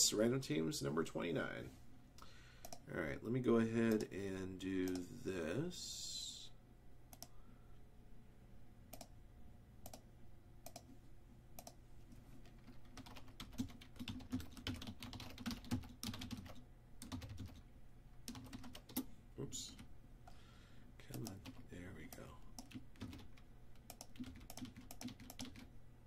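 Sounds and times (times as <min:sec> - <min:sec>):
typing on computer keyboard: 0:10.6 - 0:10.8, 0:12.4 - 0:17.6, 0:18.3 - 0:19.9, 0:21.1 - 0:25.7.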